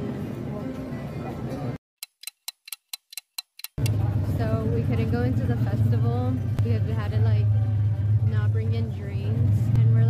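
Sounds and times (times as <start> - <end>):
sharp ticks: 2.0 - 4.0
low engine hum: 3.8 - 10.0
voices: 3.8 - 10.0.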